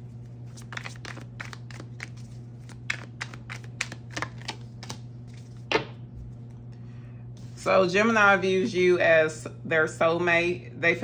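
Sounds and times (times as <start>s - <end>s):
cards being shuffled: 0.1s - 6.5s.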